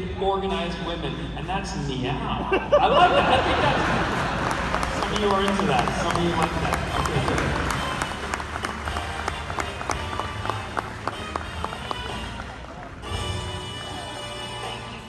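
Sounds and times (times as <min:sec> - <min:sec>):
music: 0:00.0 - 0:15.0
audience applause: 0:03.2 - 0:14.2.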